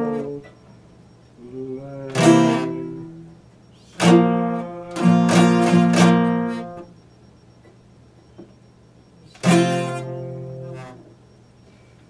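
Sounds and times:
acoustic guitar chord strummed: 2.1 - 3.2, 4.0 - 6.8, 9.4 - 11.0.

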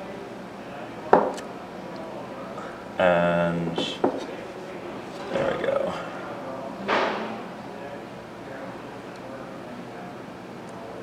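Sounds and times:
man's wordless vocal sound: 5.3 - 6.3.

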